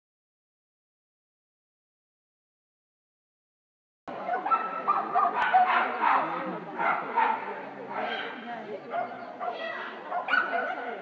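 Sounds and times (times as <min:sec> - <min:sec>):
people talking: 0:04.1 - 0:11.0
dog barking: 0:04.3 - 0:11.0.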